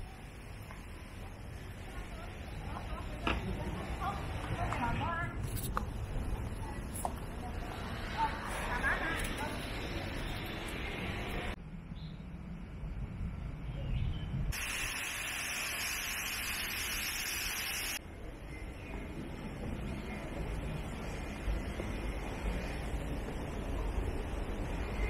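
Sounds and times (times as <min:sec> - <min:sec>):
wind rumble on microphone: 0:11.0 - 0:14.6
high-pitched insect hiss: 0:14.6 - 0:18.0.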